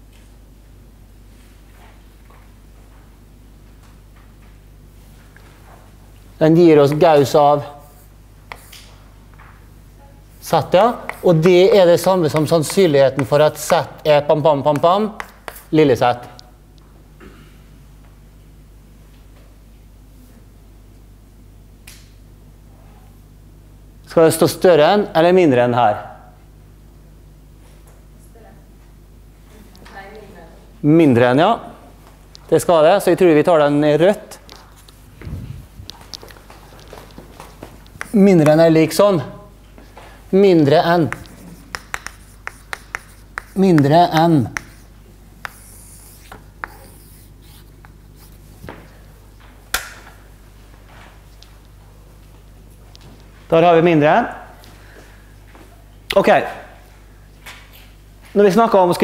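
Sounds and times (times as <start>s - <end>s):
low hum of room noise: 0.0s - 59.0s
chalk scratching: 7.8s - 8.9s, 10.6s - 15.8s, 37.9s - 38.7s, 40.8s - 48.4s
chalk tapping on blackboard: 8.5s - 8.9s, 10.6s - 15.8s, 37.8s - 38.7s, 40.8s - 48.3s.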